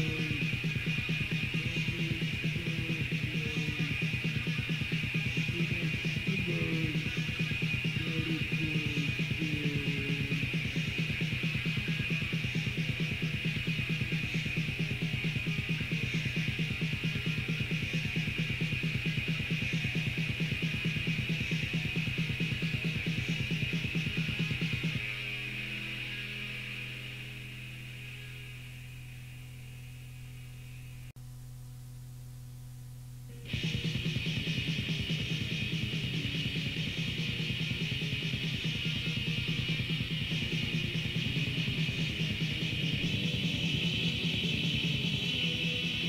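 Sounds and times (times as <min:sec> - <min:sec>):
low hum and hiss: 0:00.0 - 0:46.0
black metal band playing: 0:33.4 - 0:46.0.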